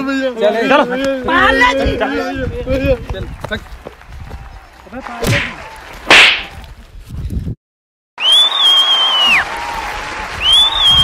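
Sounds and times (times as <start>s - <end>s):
whip-crack swoosh effect: 5.2s - 6.6s.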